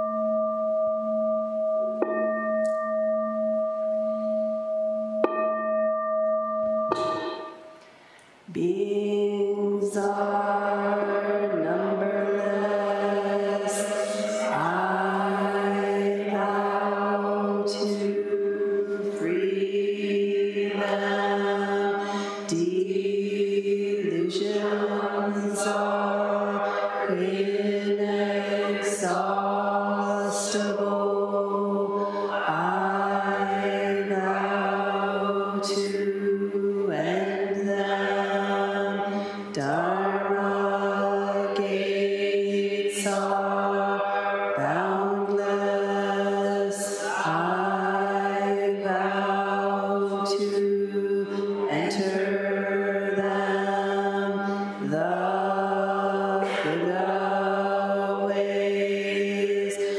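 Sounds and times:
voices chanting in unison: 8.5 - 59.9.

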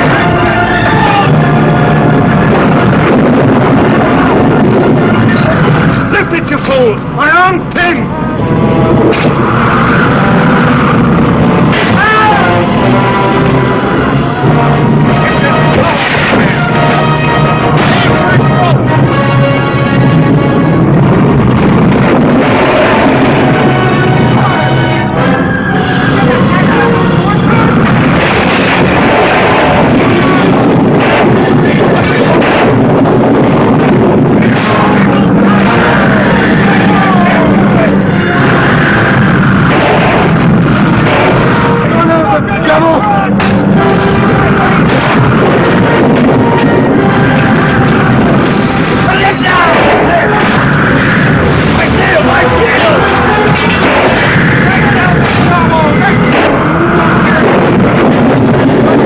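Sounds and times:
men shouting: 0.0 - 3.0, 9.4 - 18.9, 34.6 - 48.4, 49.0 - 57.7
battle soundtrack roar: 0.0 - 59.0
continuous rushing din: 0.0 - 59.0.

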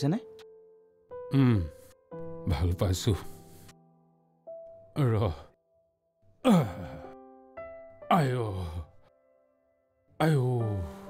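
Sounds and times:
soft sustained music chords: 0.0 - 11.0
man groaning sigh: 6.4 - 7.2.

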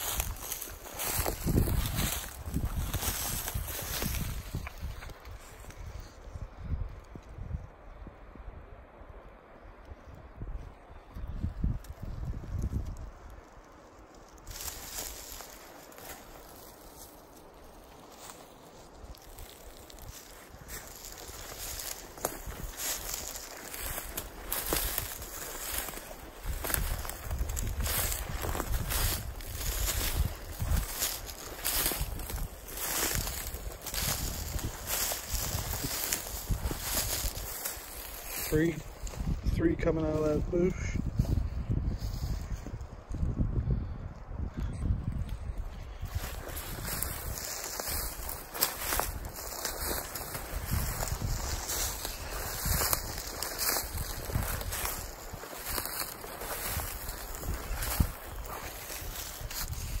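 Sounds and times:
footsteps crunching through dry leaves: 0.0 - 6.2, 12.0 - 43.3, 45.1 - 60.0.

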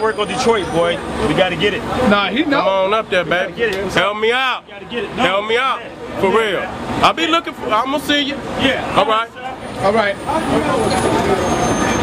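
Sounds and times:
faint voices: 0.0 - 12.0
road vehicles rumbling past: 0.0 - 12.0.

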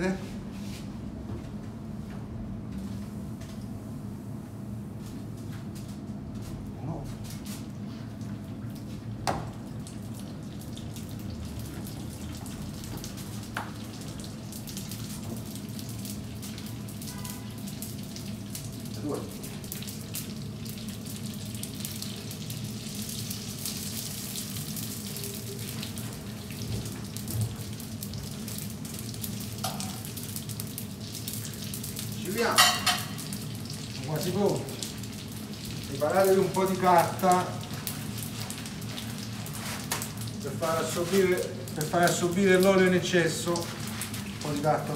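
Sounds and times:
food sizzling in hot oil: 8.9 - 44.9.

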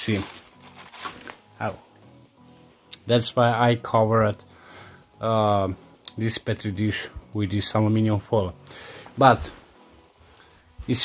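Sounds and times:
aluminium foil crinkling: 0.0 - 1.5.

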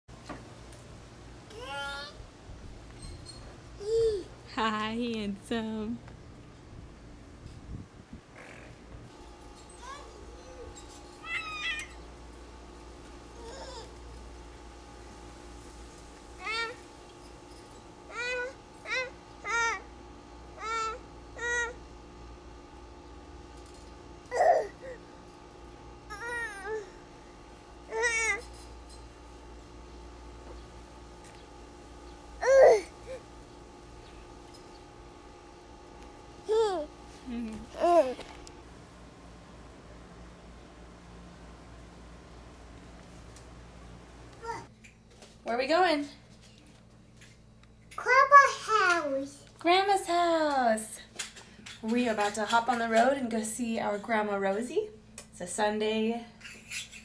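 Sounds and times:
toddler calling: 9.8 - 12.0, 13.4 - 14.0, 16.4 - 16.8, 18.1 - 19.9, 20.6 - 21.8, 24.3 - 25.0, 26.1 - 27.0, 27.9 - 28.4, 32.4 - 33.2, 44.4 - 44.7
toddler squealing: 9.9 - 12.0.

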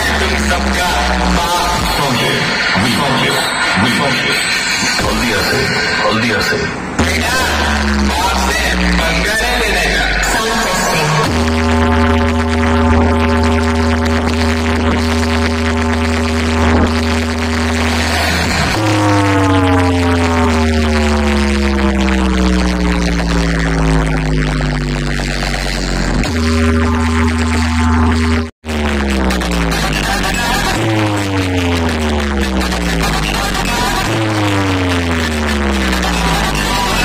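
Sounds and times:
deep humming test tone: 0.0 - 37.0.

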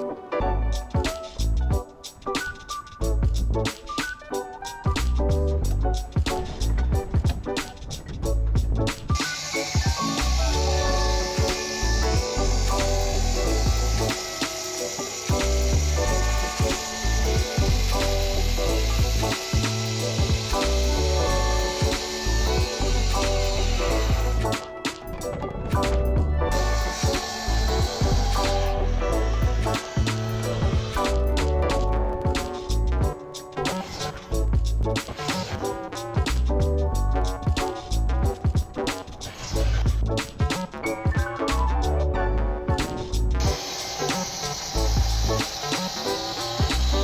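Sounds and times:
background music with steady beat: 0.0 - 47.0
circular saw cutting wood: 8.9 - 34.4, 35.0 - 35.8, 42.8 - 47.0.

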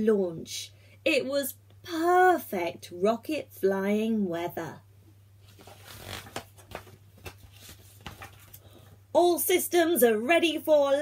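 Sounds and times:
book pages turning: 5.4 - 8.6.

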